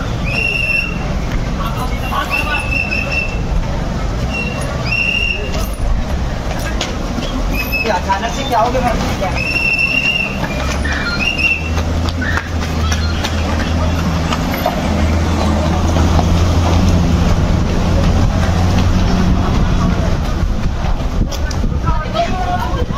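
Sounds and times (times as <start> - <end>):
car engine humming: 0.0 - 22.7
crowd voices: 0.0 - 22.9.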